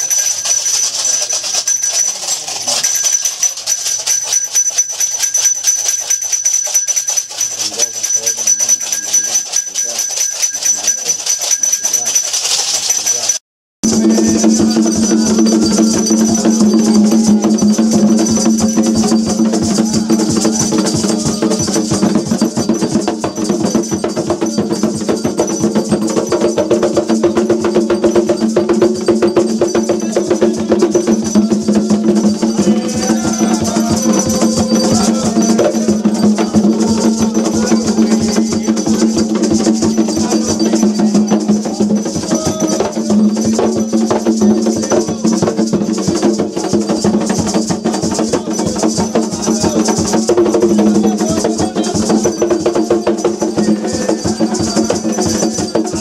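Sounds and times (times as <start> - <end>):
drumming: 0.0 - 56.0
hand-held percussion strokes: 0.0 - 56.0.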